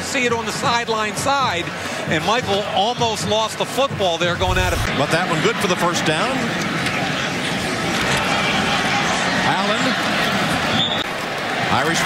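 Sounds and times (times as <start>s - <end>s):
stadium crowd noise: 0.0s - 12.0s
referee's whistle: 10.7s - 11.1s.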